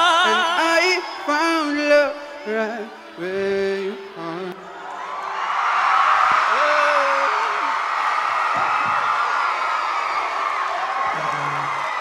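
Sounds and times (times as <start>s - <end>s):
audience cheering and whooping: 4.6s - 12.0s.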